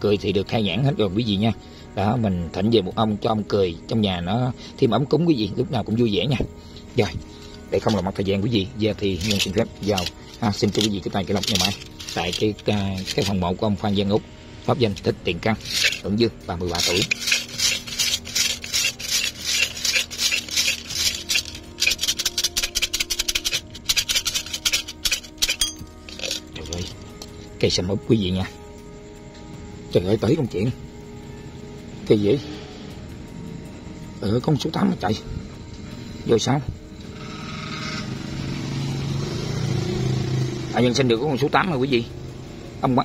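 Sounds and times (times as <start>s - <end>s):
sticks rattling in shaken cup: 8.9s - 13.4s, 14.9s - 27.0s.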